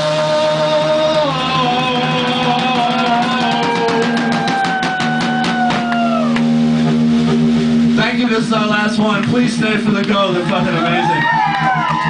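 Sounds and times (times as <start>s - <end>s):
drum and cymbal hit: 0.0s - 10.0s
rock band final chord: 0.0s - 10.8s.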